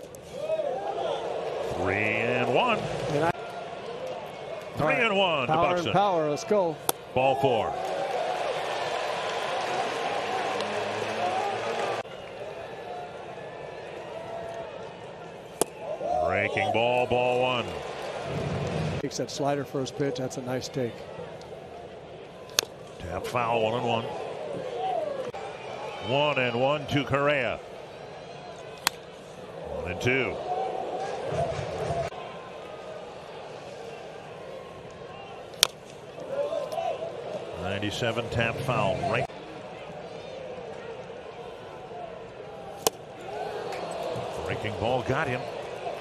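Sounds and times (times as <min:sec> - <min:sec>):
ballpark crowd: 0:00.0 - 0:46.0
wooden bat cracking ball: 0:15.5 - 0:15.8, 0:28.8 - 0:29.0, 0:42.8 - 0:43.0.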